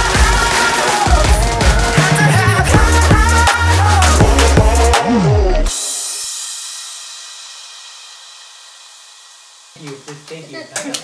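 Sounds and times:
cymbal crash ringing: 5.7s - 10.2s.

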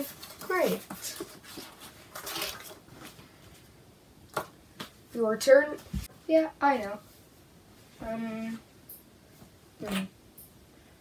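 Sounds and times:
paper and pencil rustling: 0.0s - 3.7s.

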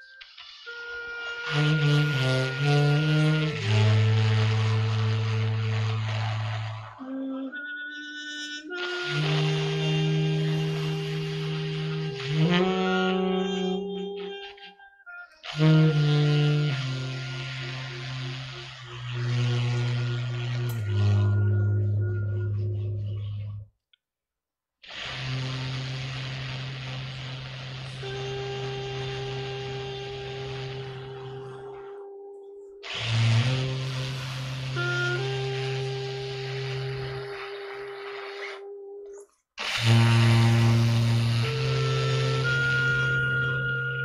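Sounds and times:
saxophone and trumpet long notes: 0.0s - 23.6s, 24.9s - 44.0s
breathy hiss: 24.9s - 31.9s.

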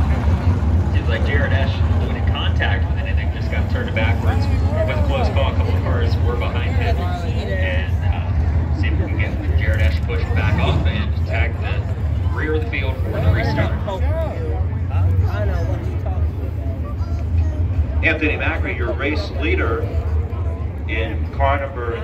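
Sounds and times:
race car engines low rumble: 0.0s - 22.0s
spectators' voices: 0.0s - 22.0s.

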